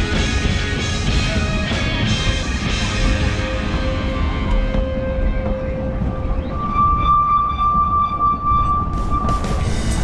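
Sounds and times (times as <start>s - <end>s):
low rumble of moving train: 0.0s - 10.0s
steam locomotive whistle blast: 6.3s - 9.8s.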